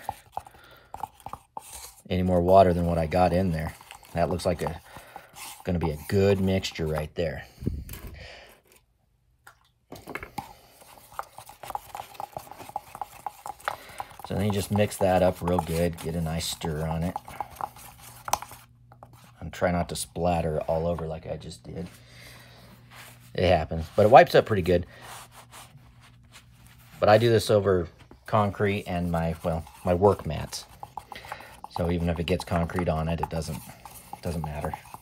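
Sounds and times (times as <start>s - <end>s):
stick tapping plastic cup: 0.0s - 7.2s, 9.9s - 19.3s, 28.4s - 35.0s
cloth rag rubbing: 22.8s - 31.1s.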